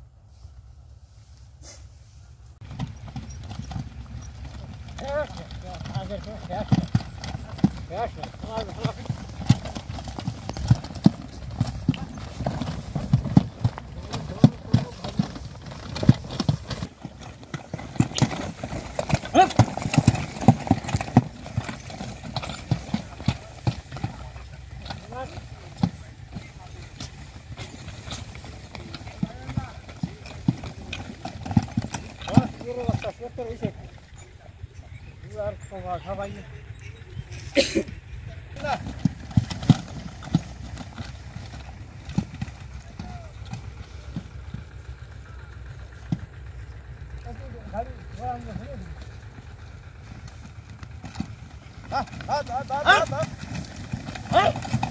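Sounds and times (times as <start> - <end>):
low rumble of cart: 0.0 - 54.9
cart wheels knocking and clattering: 2.6 - 54.9
horse hooves clopping on hard ground: 2.6 - 54.9
men calling out: 19.1 - 20.2, 51.7 - 54.9.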